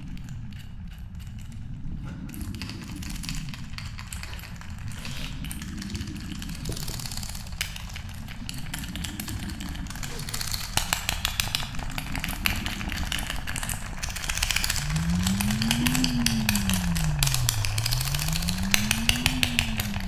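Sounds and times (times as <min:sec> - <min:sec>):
dense crackling clicks: 0:00.0 - 0:20.0
low rumble drone: 0:00.0 - 0:20.0
low rising and falling tone: 0:01.1 - 0:20.0.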